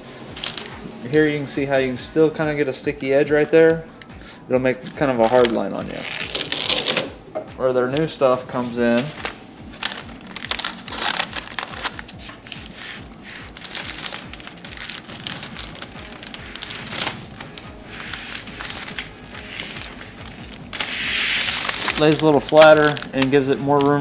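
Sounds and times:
background music: 0.0 - 24.0
foam tape crinkling: 0.2 - 1.3, 4.7 - 7.2, 7.9 - 24.0
rasping hiss: 8.6 - 23.4.

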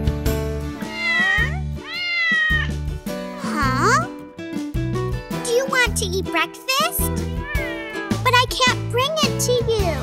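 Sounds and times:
bouncy children's music: 0.0 - 10.0
cartoon cat meowing: 0.8 - 2.7, 7.3 - 8.7.

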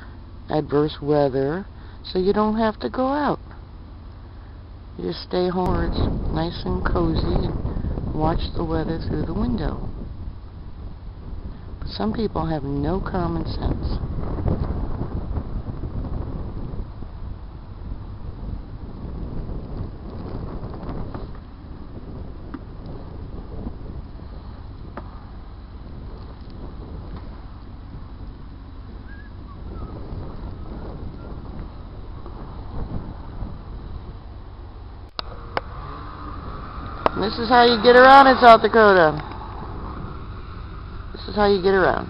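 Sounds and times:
wind rumbling on microphone: 0.0 - 42.0.

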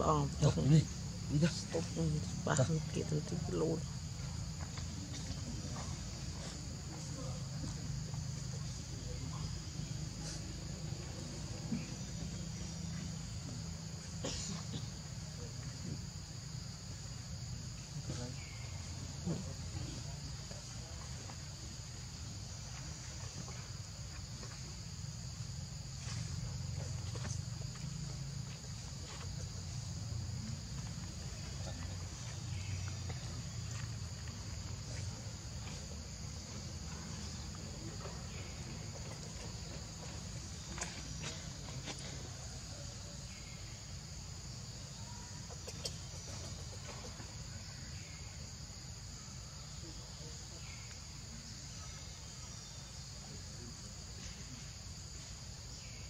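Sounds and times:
insect chorus droning: 0.0 - 56.0.

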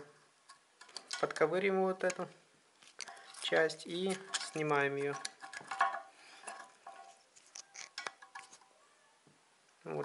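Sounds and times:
metal tool clicking and scraping nut: 0.5 - 1.4, 3.0 - 8.7.

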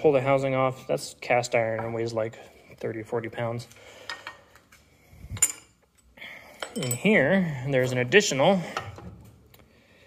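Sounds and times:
metal wrench clinking on metal: 5.3 - 7.4.

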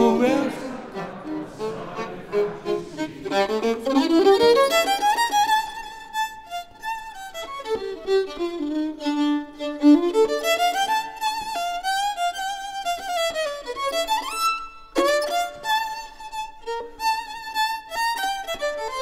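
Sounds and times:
jazz violin solo: 0.0 - 19.0.

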